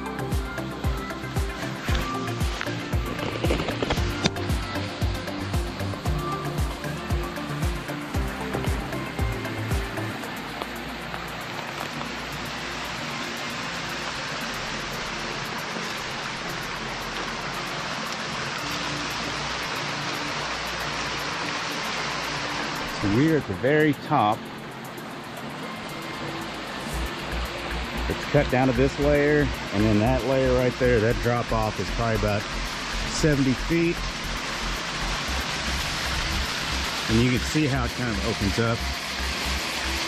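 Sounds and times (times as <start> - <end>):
background music with steady beat: 0.0 - 40.0
waterfall rushing: 0.0 - 40.0.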